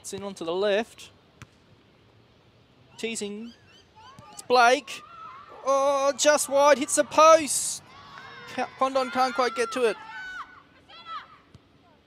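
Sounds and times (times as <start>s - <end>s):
distant players shouting: 2.9s - 11.6s.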